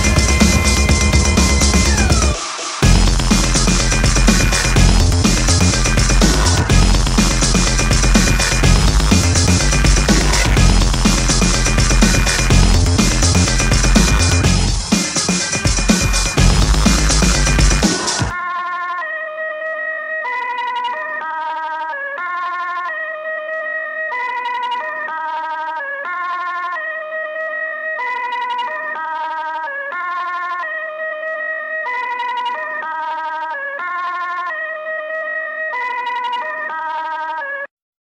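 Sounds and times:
siren-like synth riff: 0.0 - 37.7.

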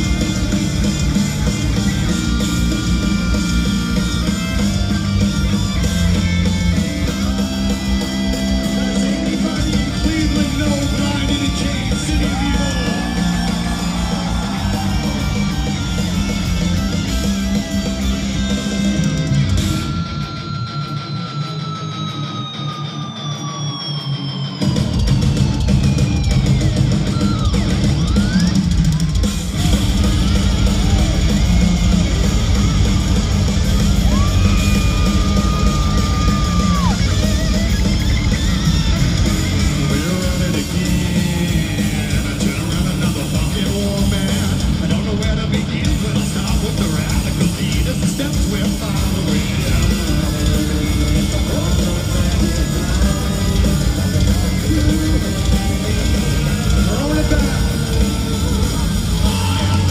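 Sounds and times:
heavy metal band playing live: 0.0 - 59.9.

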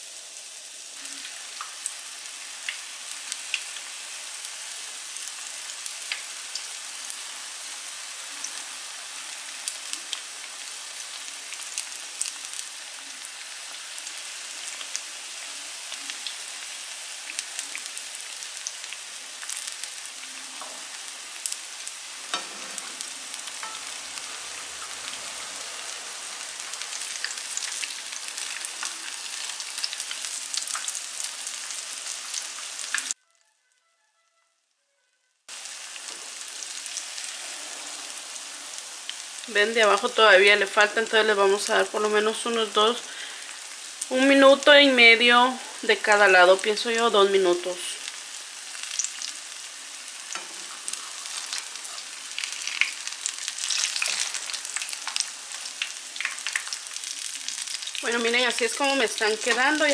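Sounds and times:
fritters sizzling in hot oil: 0.0 - 33.2, 35.5 - 59.9
oil crackles and pops: 5.8 - 7.2, 26.4 - 33.5, 48.1 - 59.9.

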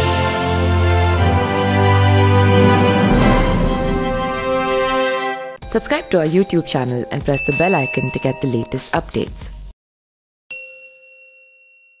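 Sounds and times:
bell ding: 7.2 - 9.0, 10.5 - 12.0.

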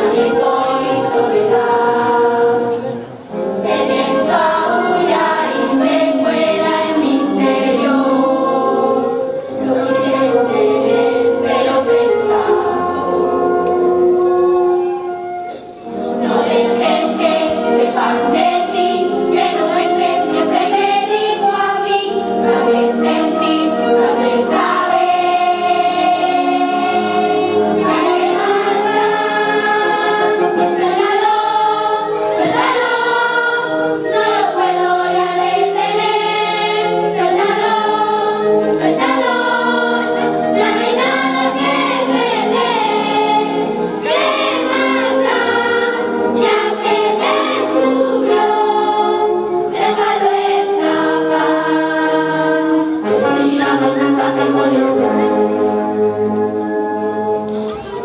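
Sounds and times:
children's choir singing: 0.0 - 58.0
wind band playing: 0.0 - 58.0.

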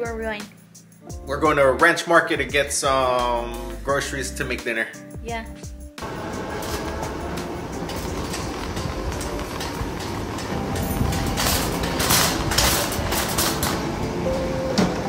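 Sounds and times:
shopping cart rattling on concrete: 6.0 - 14.5.

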